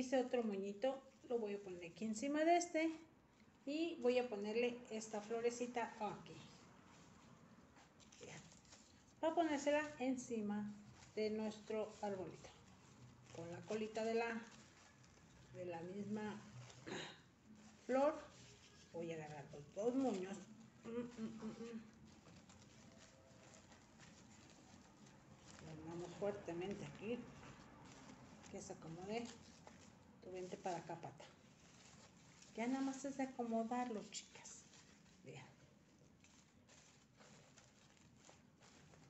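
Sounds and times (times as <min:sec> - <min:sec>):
woman's voice: 0:00.0 - 0:03.1, 0:03.7 - 0:06.6, 0:09.2 - 0:12.6, 0:13.3 - 0:14.6, 0:15.6 - 0:16.5, 0:17.8 - 0:18.3, 0:19.0 - 0:21.9, 0:25.6 - 0:27.4, 0:28.5 - 0:29.4, 0:30.2 - 0:31.4, 0:32.6 - 0:35.6
ribbon rustling: 0:00.0 - 0:39.0.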